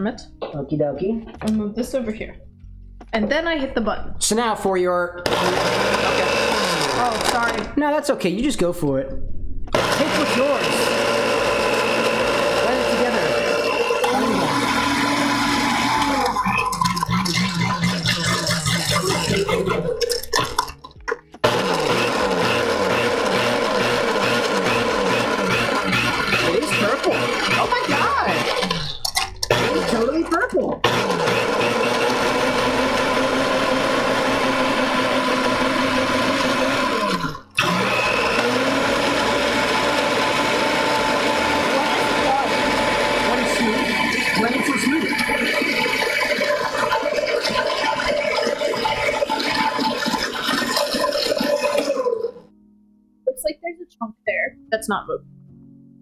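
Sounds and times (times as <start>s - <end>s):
blender motor whining: 5.2s - 7.8s, 9.7s - 20.7s, 21.4s - 52.5s.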